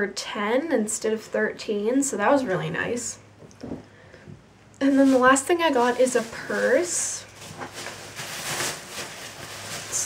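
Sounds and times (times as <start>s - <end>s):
shopping bag rustling: 4.8s - 10.0s.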